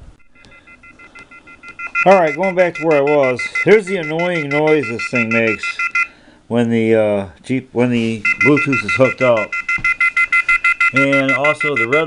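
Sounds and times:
rapid pulsing electronic beep: 0.2 - 6.1, 8.2 - 12.0.

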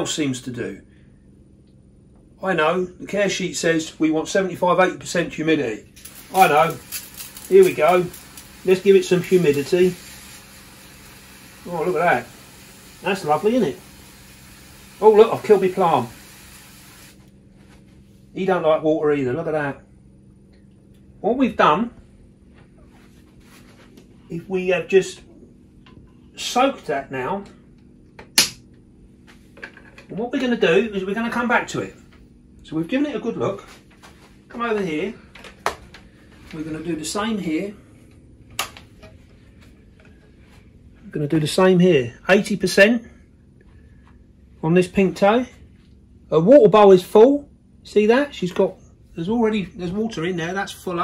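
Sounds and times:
pressure sprayer hissing: 6.0 - 17.3
sharp click: 28.2 - 28.6.

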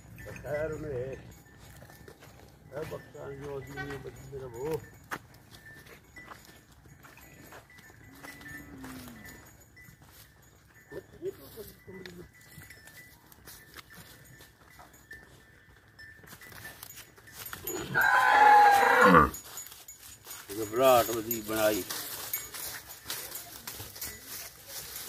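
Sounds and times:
hoof steps on dry stalks: 0.0 - 25.0
cow calling: 17.6 - 19.4.

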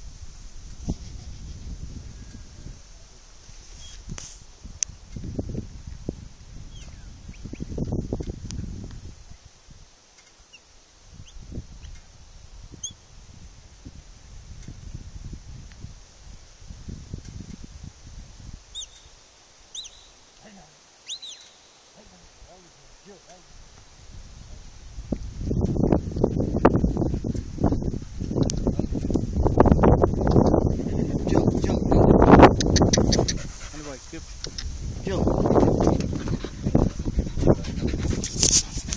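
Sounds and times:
wind buffeting microphone: 0.0 - 9.9, 11.0 - 21.3, 22.0 - 38.9.

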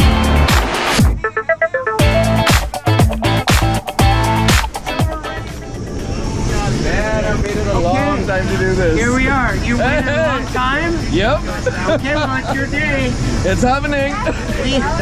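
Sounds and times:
people talking and laughing: 3.1 - 15.0.

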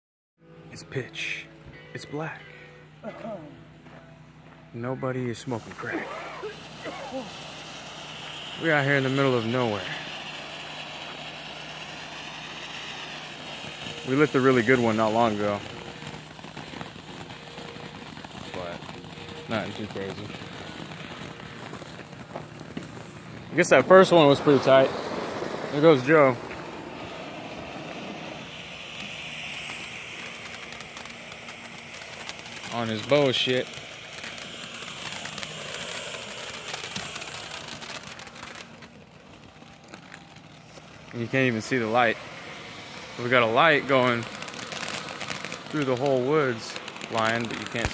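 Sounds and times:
ground fountain firework hissing: 0.7 - 3.7, 4.7 - 47.9.

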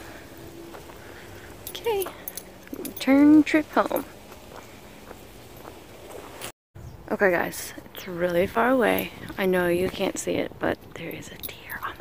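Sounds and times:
footsteps on asphalt: 0.3 - 6.5.

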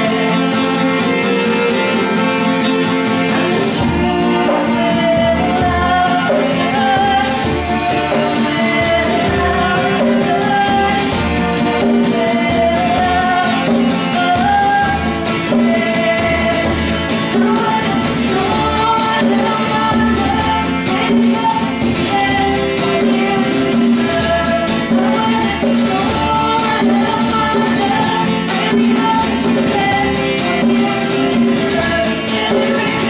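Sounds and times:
conga drum: 0.0 - 33.0
strummed acoustic guitar: 0.0 - 33.0
violin: 0.0 - 33.0
woman singing: 0.0 - 33.0.

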